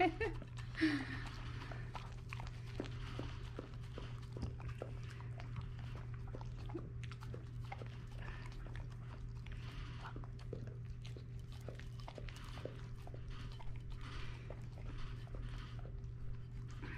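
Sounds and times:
dog licking and chewing: 0.0 - 16.9.

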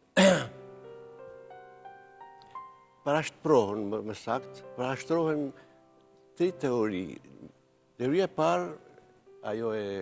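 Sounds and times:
soft keyboard music: 0.0 - 10.0
person clearing throat: 0.2 - 0.6.

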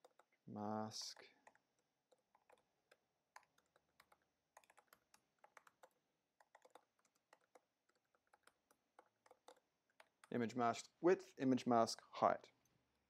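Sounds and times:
typing on computer keyboard: 0.0 - 0.3, 1.0 - 10.4.

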